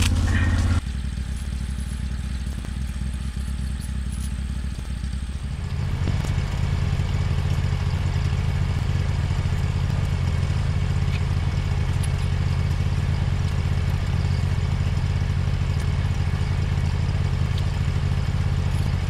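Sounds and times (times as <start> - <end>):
tractor engine idling: 0.0 - 19.0.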